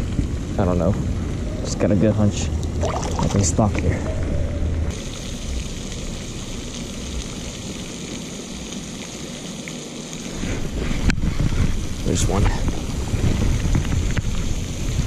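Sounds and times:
fountain spray splashing: 0:02.6 - 0:03.7, 0:04.9 - 0:15.0
wind buffeting microphone: 0:10.4 - 0:15.0.

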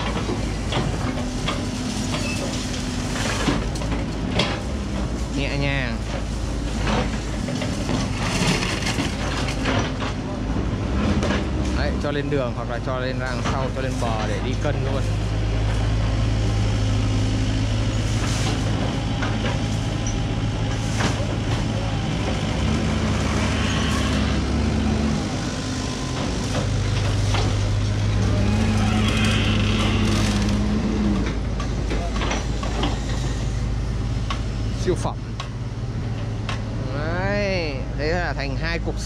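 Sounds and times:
excavator diesel engine labouring: 0:00.0 - 0:39.0.

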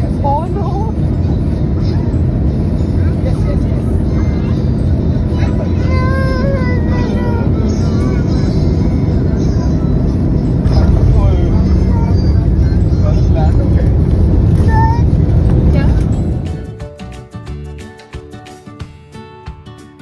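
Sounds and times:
jet engines and wheels rumbling: 0:00.0 - 0:17.5.

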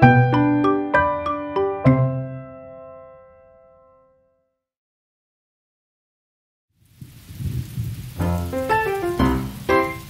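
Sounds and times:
keyboard melody: 0:00.0 - 0:04.4, 0:08.2 - 0:10.0
rain falling: 0:06.8 - 0:10.0
low rumble of thunder: 0:06.9 - 0:10.0.

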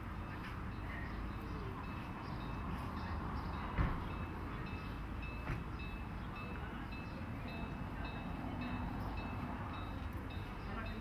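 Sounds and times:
locomotive bell ringing: 0:00.0 - 0:11.0
train rumble: 0:00.0 - 0:11.0.

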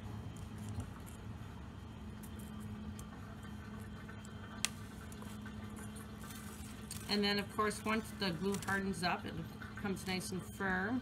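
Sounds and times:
drain pump humming: 0:00.0 - 0:11.0.

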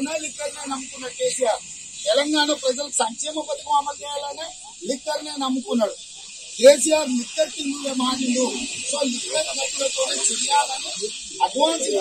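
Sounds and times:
man speaking forcefully: 0:00.0 - 0:06.0, 0:06.6 - 0:12.0
steady high hiss: 0:00.0 - 0:12.0.

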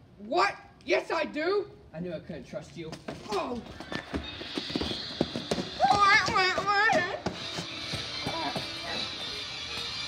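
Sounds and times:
scuffling and dull thumps: 0:02.9 - 0:10.0.

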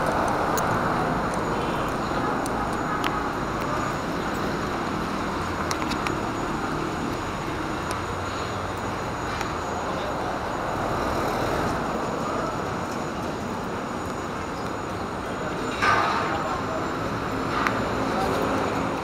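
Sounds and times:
road traffic hum: 0:00.0 - 0:19.0.

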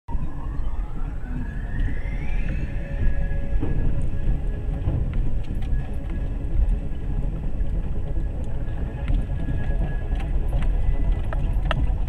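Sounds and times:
faint rising tone: 0:00.1 - 0:11.7.

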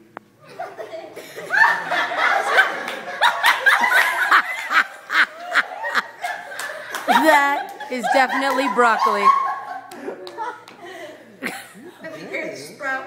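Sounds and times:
group of people laughing: 0:00.4 - 0:12.6.

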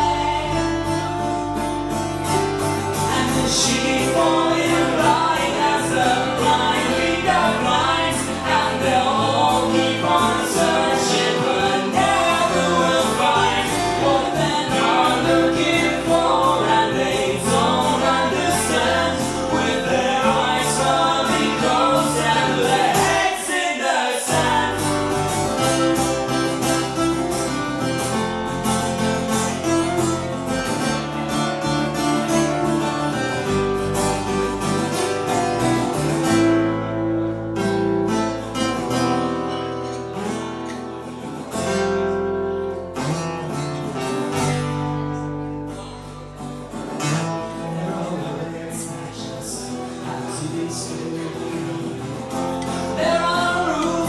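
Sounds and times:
electric bass: 0:00.0 - 0:23.4, 0:24.3 - 0:54.0
strummed acoustic guitars: 0:00.0 - 0:54.0
man singing: 0:03.0 - 0:25.7, 0:47.0 - 0:54.0.

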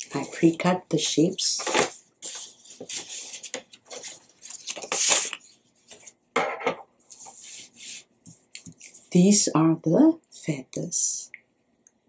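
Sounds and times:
paper rustling on a tabletop: 0:01.5 - 0:06.2, 0:07.0 - 0:09.1.

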